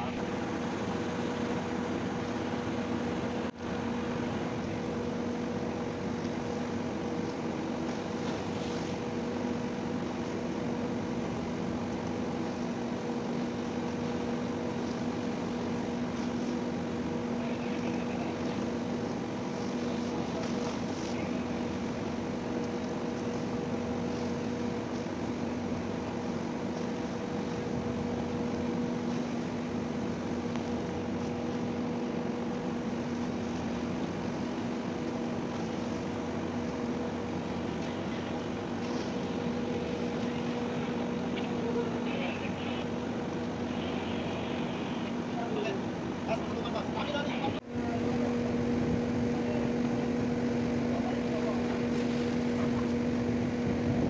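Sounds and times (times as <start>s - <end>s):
ship diesel engine droning: 0.0s - 54.0s.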